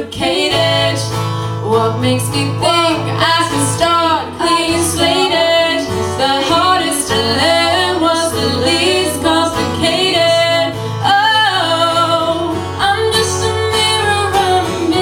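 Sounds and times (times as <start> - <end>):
acoustic guitar: 0.0 - 15.0
person singing: 0.0 - 15.0.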